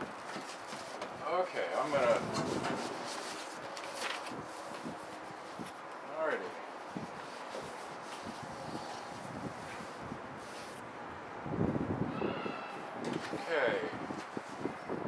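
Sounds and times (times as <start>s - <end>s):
photo paper being shuffled: 1.8s - 5.9s
wind on microphone: 1.8s - 5.9s, 6.8s - 15.0s.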